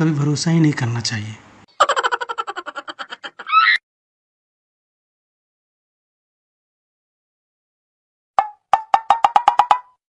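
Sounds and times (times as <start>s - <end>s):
chicken squawk: 1.8s - 3.8s.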